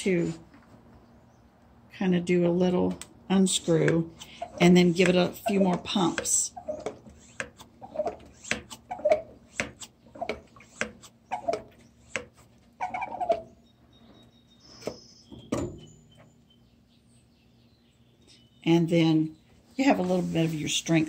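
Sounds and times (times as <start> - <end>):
hand pump strokes: 3.6 - 13.5.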